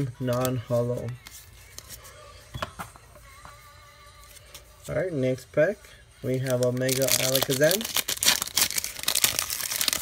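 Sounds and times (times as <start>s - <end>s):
foil wrapper tearing and crinkling: 6.4s - 10.0s.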